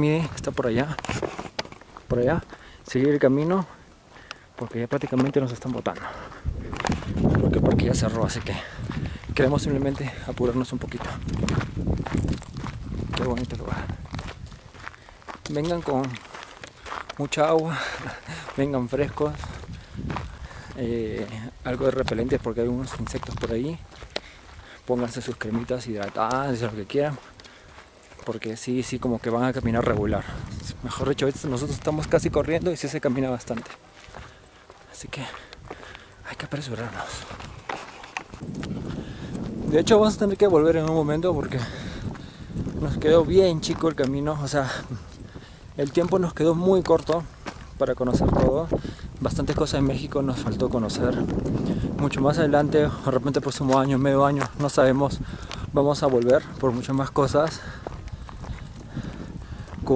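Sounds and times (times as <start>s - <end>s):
footsteps on dirt path: 0.0s - 59.9s
camera handling rumble: 0.9s - 2.1s, 6.4s - 7.9s, 37.3s - 39.7s
handheld camera knocking: 10.4s - 14.6s, 49.4s - 54.8s.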